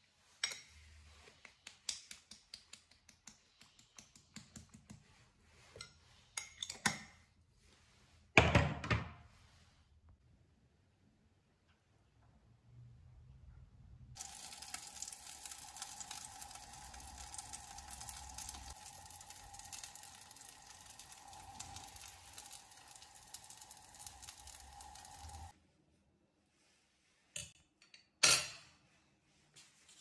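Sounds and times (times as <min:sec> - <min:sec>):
chicken wings sizzling in oven: 0:14.2 - 0:25.5.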